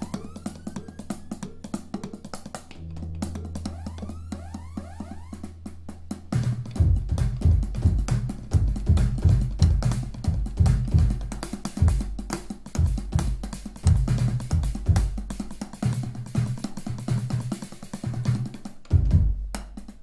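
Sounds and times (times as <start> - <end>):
synthesized drum hits: 0.0 - 17.6, 18.2 - 19.9.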